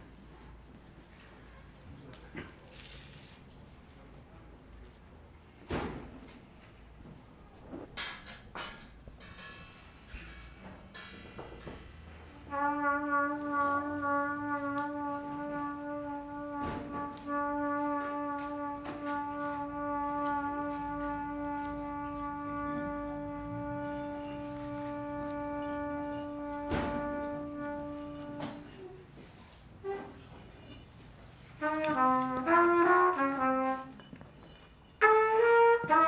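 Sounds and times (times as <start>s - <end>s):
trumpet holding long note: 12.4s - 28.7s, 31.6s - 34.0s, 35.0s - 36.0s.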